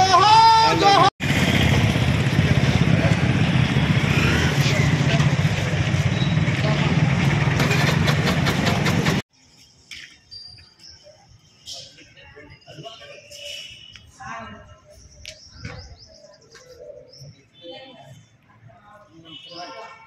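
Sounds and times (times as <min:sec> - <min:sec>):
motor scooters and traffic: 0:00.6 - 0:09.5.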